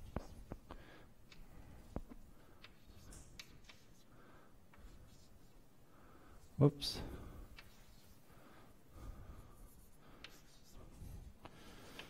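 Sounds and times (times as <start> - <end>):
chalk scratching on blackboard: 4.9 - 5.6, 7.6 - 8.2, 9.6 - 11.3.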